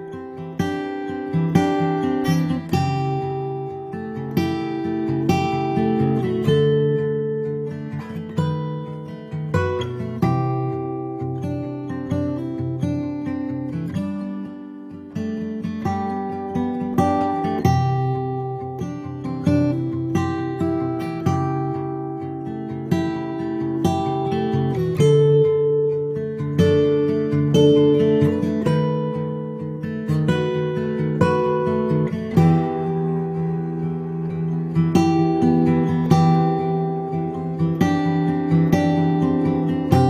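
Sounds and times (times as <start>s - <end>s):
acoustic guitar music: 0.0s - 40.0s.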